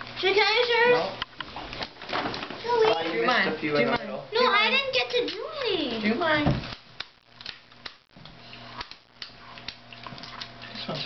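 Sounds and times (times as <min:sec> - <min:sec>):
faint steady hum: 0:00.0 - 0:11.0
candles crackling: 0:04.8 - 0:11.0.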